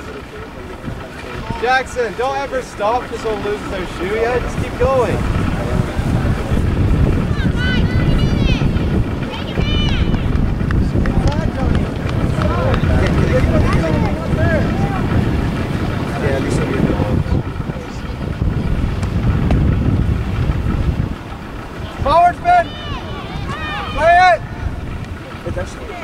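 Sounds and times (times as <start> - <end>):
wind buffeting microphone: 0.0 - 26.0
faint distant shouts: 7.2 - 10.6, 21.4 - 26.0.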